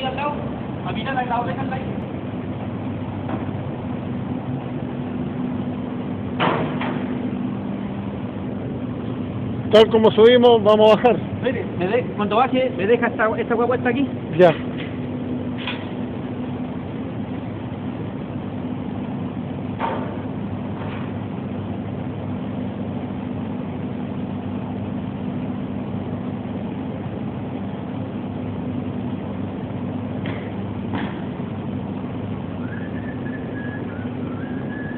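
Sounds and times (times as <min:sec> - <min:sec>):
machinery hum: 0:00.0 - 0:34.9.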